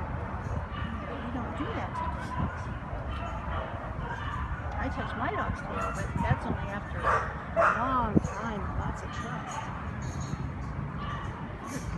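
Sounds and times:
dog barking and yipping: 0.6s - 6.4s, 7.0s - 10.4s, 11.0s - 11.8s.

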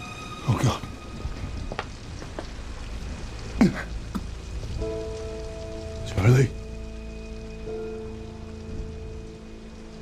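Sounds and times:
tense drama underscore: 0.0s - 10.0s.

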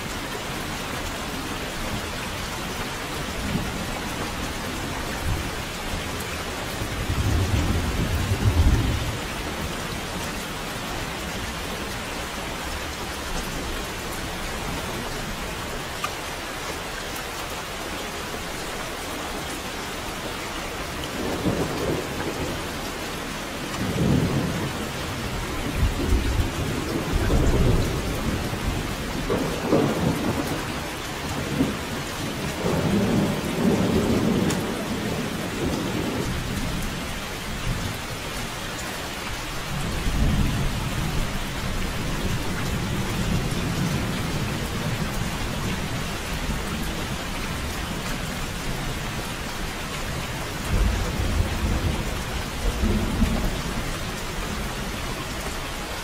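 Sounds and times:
heavy rain falling: 0.0s - 56.0s
low rolls of thunder: 6.9s - 10.1s, 21.1s - 22.8s, 23.6s - 37.9s, 50.1s - 55.0s.

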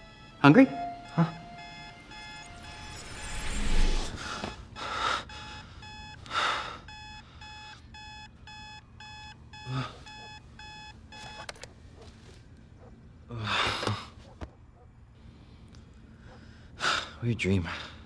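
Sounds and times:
noisy swells: 0.0s - 4.4s
alarm clock beeping: 0.0s - 11.5s.

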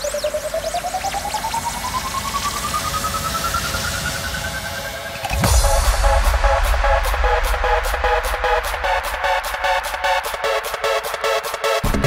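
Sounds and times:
rising synth tone: 0.0s - 11.5s
pulsing sweeping synth effects: 0.0s - 12.0s.

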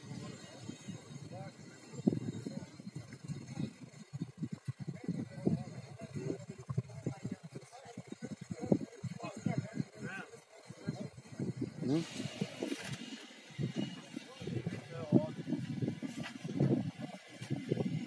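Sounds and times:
people talking indistinctly: 0.0s - 18.0s.

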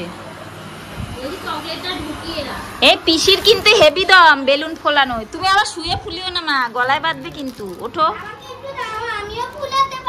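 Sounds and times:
young child talking: 8.2s - 10.0s.

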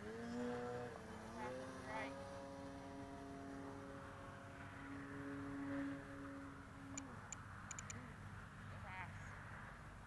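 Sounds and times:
distant model plane motor droning: 0.0s - 8.2s
short sharp ticks: 7.7s - 8.0s.

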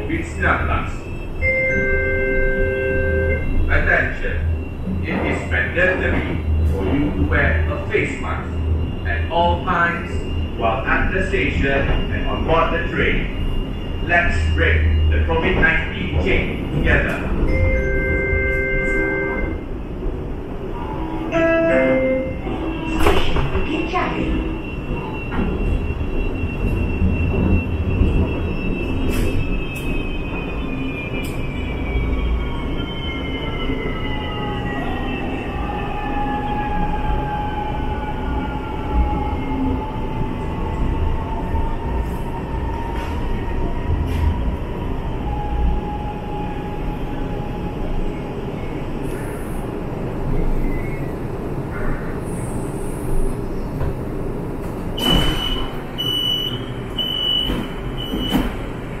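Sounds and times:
rumble of train wheels: 0.0s - 59.0s
short high door beeps: 1.4s - 3.6s, 55.0s - 58.6s.

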